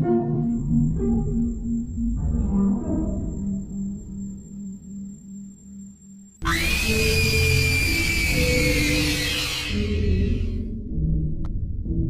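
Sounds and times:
horror music sting: 6.4s - 10.7s.

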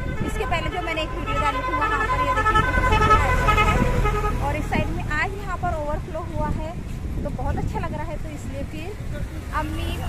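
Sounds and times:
vehicle engine rumble: 0.0s - 10.0s.

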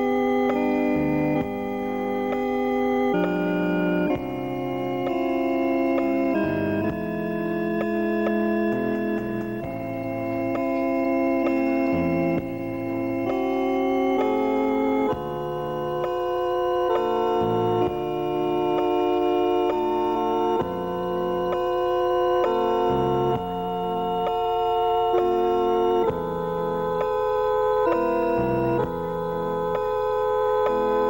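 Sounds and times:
organ playing sustained chords: 0.0s - 31.0s.

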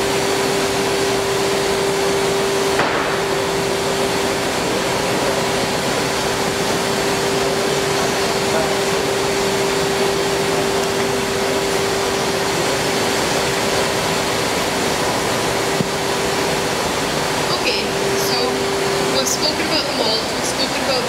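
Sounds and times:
machinery drone: 0.0s - 21.0s.

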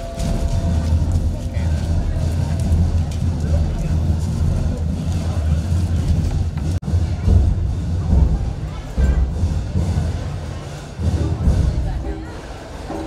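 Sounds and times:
steady low rumble: 0.0s - 12.9s.

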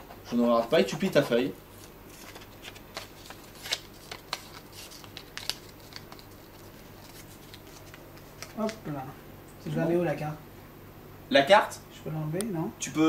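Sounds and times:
paper rustling: 0.3s - 8.8s.

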